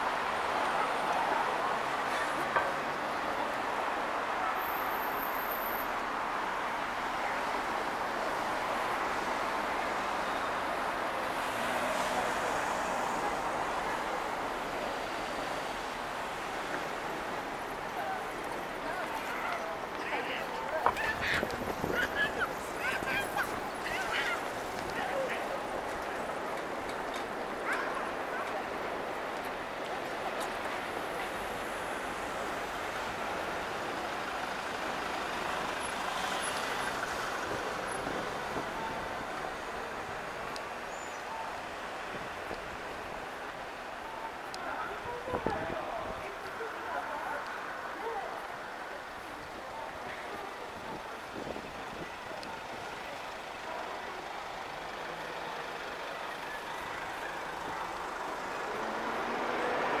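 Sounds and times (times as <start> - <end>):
street traffic: 0.0 - 60.0.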